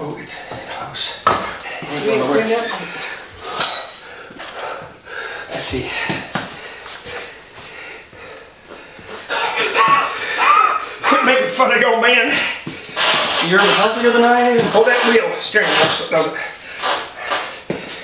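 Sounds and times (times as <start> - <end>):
men talking: 0.0 - 3.1, 5.4 - 6.3, 11.0 - 16.6
metal parts clinking and knocking: 3.6 - 4.0.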